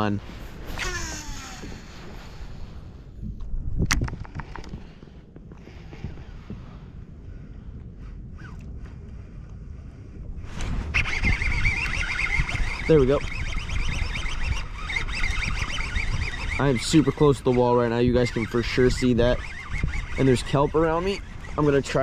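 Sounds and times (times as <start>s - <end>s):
wind and water rumble: 0.0s - 22.0s
wavering high whir: 0.3s - 2.6s, 10.4s - 22.0s
fishing reel winding: 11.0s - 22.0s.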